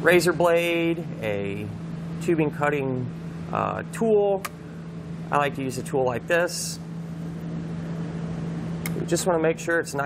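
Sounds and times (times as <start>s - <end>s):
sharp click: 8.8s - 9.0s.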